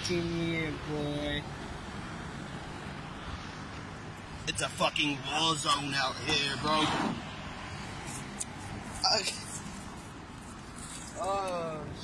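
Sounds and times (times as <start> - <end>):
cars passing on road: 0.0 - 12.0.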